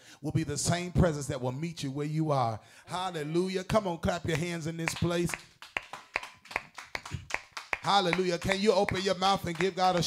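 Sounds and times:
congregation clapping a steady beat: 0:04.1 - 0:10.0.

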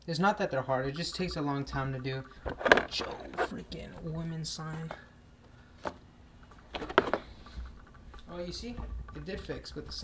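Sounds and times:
plastic liner clicks and knocks: 0:06.7 - 0:07.2.

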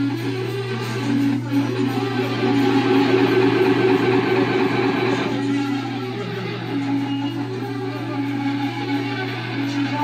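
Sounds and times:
loud distorted live band: 0:00.0 - 0:10.0.

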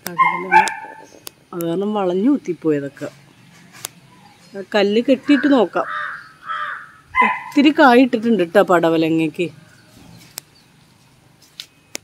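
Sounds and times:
person speaking: 0:04.5 - 0:05.9
crow cawing: 0:05.2 - 0:07.6.

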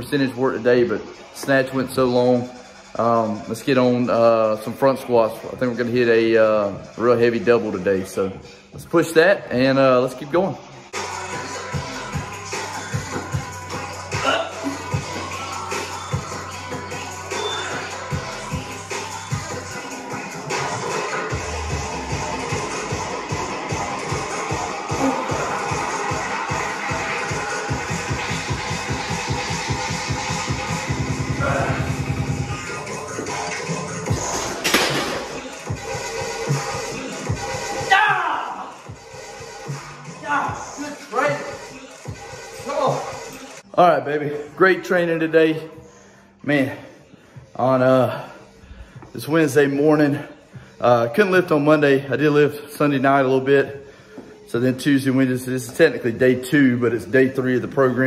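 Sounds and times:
music with steady beat and vocals: 0:10.4 - 0:37.9, 0:38.5 - 0:44.0.

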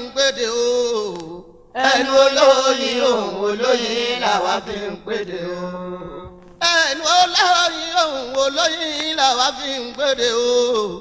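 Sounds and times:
person singing a chant: 0:00.0 - 0:11.0.

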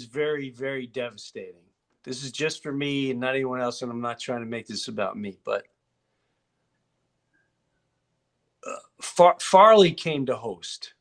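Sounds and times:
man talking: 0:00.0 - 0:05.8, 0:08.7 - 0:11.0.

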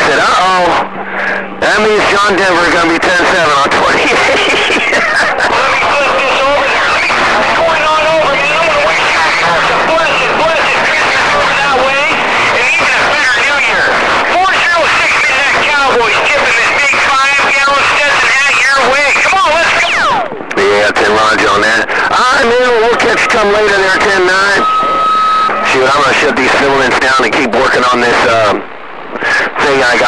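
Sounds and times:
garbled radio voices: 0:00.0 - 0:30.0
radio static: 0:00.0 - 0:30.0.

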